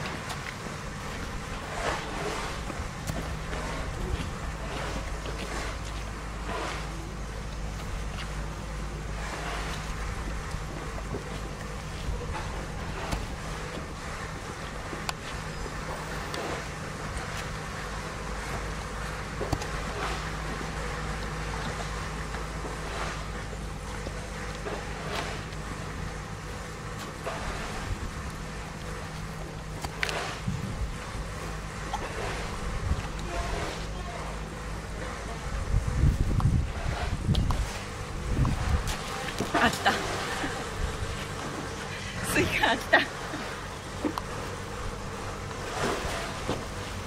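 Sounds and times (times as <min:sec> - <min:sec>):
wind buffeting microphone: 0:30.4 - 0:31.2, 0:35.5 - 0:39.0.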